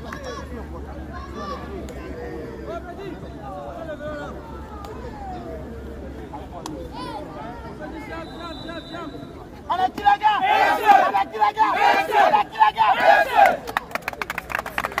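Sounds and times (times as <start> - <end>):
team shouting rallying cry: 9.7 - 13.7
sharp claps: 13.3 - 15.0.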